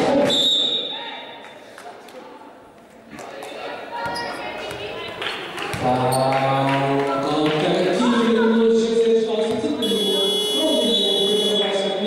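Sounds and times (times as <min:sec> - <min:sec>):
high-pitched electronic buzzer: 0:09.8 - 0:11.7.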